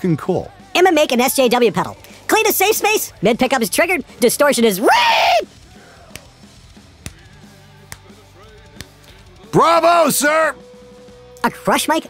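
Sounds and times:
faint background music: 0:00.0 - 0:12.0
slow hand clap: 0:06.1 - 0:06.4, 0:07.0 - 0:09.2.

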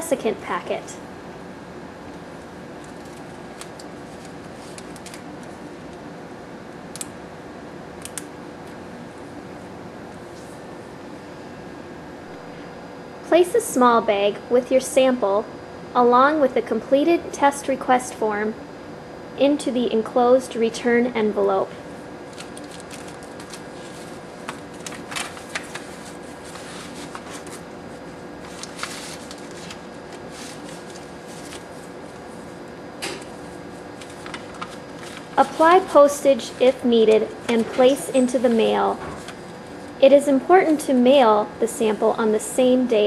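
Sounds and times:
faint steady hum: 0:00.0 - 0:43.0
plastic bag and paper rustling: 0:02.8 - 0:05.7, 0:22.3 - 0:32.4, 0:33.2 - 0:39.9.

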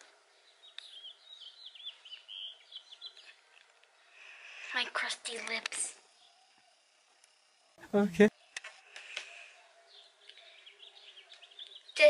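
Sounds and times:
bird twittering: 0:00.6 - 0:03.3.

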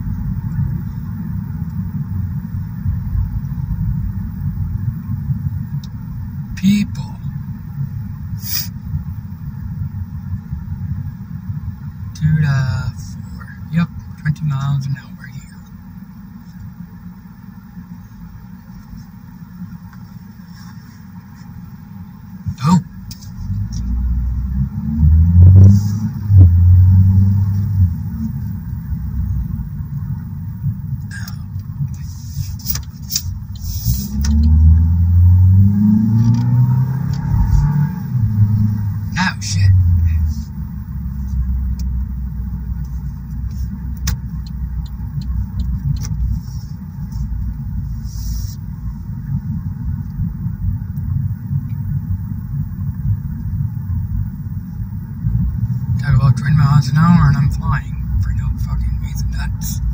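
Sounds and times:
car engine accelerating: 0:00.0 - 0:59.9.

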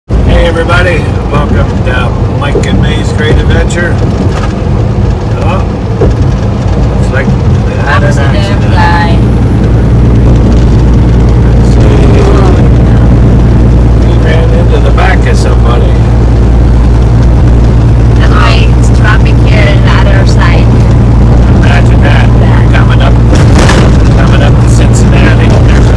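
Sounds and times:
truck engine and road noise: 0:00.0 - 0:25.9.

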